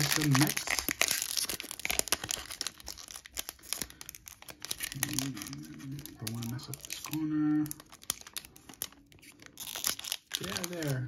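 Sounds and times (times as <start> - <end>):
foil wrapper crinkling and tearing: 0.0 - 11.0.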